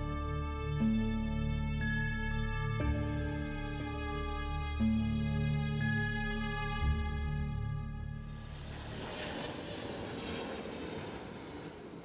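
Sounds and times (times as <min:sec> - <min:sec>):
soft music: 0:00.0 - 0:09.3
jet airliner engine noise: 0:08.4 - 0:12.0.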